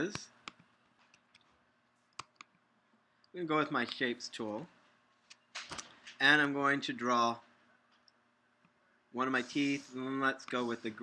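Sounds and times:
faint mouse and key clicks: 0:00.0 - 0:02.6.

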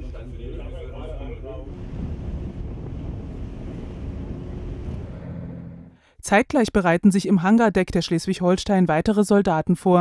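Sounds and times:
wind buffeting microphone: 0:00.6 - 0:06.0
sea waves washing: 0:01.7 - 0:06.0.

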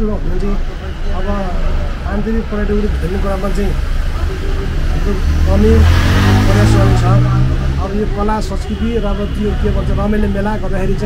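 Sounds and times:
man talking: 0:00.0 - 0:03.9, 0:04.8 - 0:11.0
vehicle engine passing: 0:00.0 - 0:11.0.

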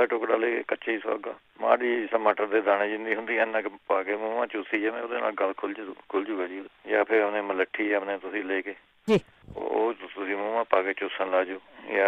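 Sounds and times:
person talking: 0:09.1 - 0:09.8.

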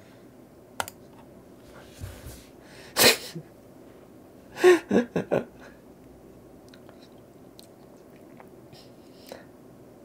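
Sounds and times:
man laughing: 0:04.6 - 0:05.7.

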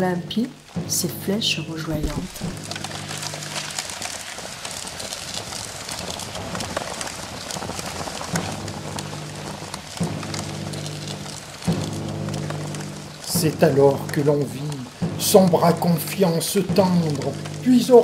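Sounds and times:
fire crackling: 0:00.0 - 0:18.0.

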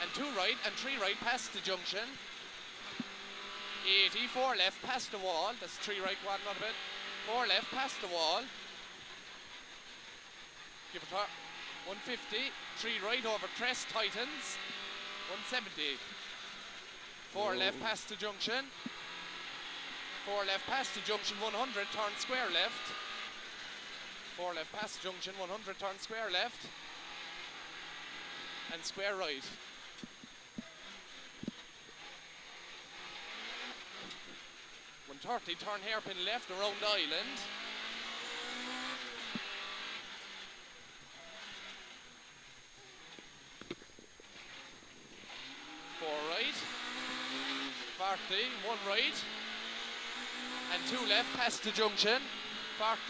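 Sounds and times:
car cabin engine and road noise: 0:00.0 - 0:53.0.

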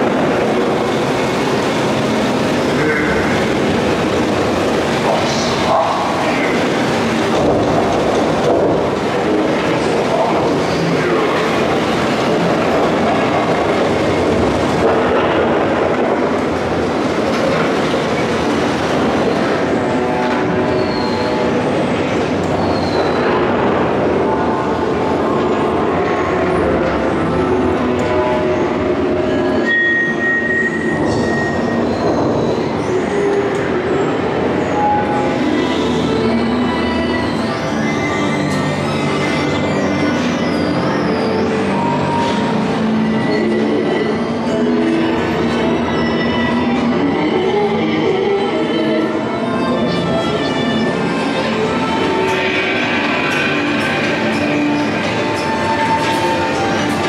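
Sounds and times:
ride car rolling rumble and rattle: 0:00.0 - 0:57.0.

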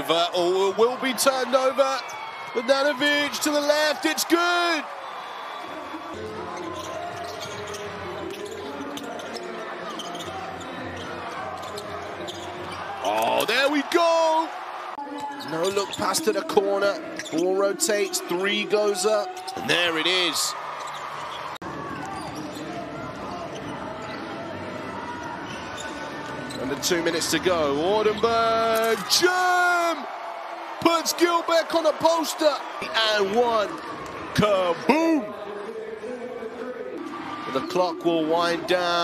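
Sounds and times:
crowd and player voices: 0:00.0 - 0:39.0.

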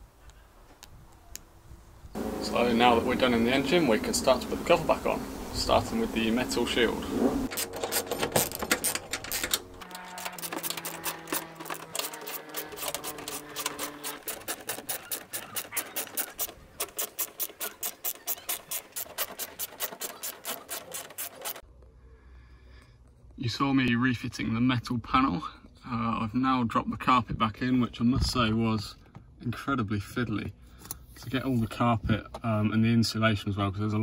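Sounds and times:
screwdriver rasping clicks: 0:07.5 - 0:21.6.

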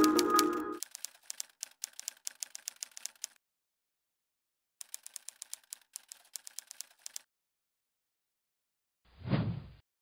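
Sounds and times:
keyboard keys clicking: 0:00.0 - 0:03.4, 0:04.8 - 0:07.2.

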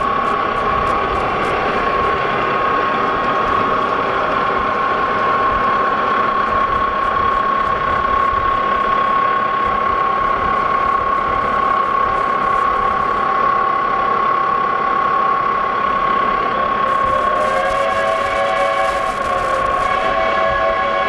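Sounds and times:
high whine: 0:00.0 - 0:21.0.

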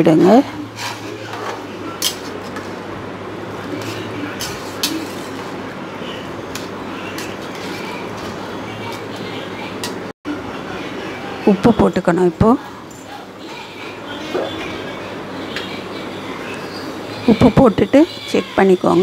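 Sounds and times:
metal spoon clinking and scraping pot: 0:03.8 - 0:05.5, 0:06.5 - 0:08.3.

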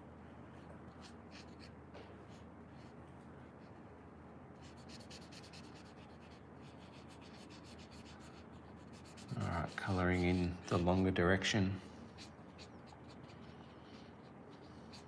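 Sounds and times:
marker rubbing on paper: 0:01.0 - 0:01.7, 0:04.6 - 0:11.4, 0:12.1 - 0:15.0.

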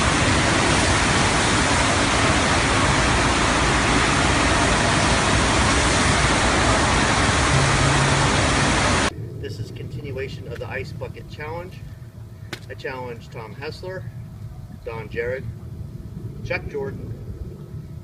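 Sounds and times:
water jetting across surf simulator: 0:00.0 - 0:09.1.

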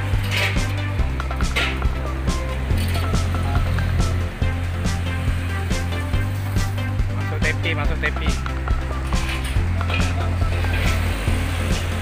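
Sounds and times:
background music with steady beat: 0:00.0 - 0:12.0
deep bass line: 0:00.0 - 0:12.0.

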